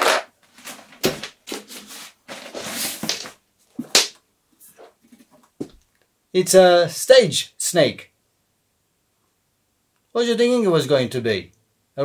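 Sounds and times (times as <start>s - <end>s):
plastic bag rustling: 0.0s - 4.0s.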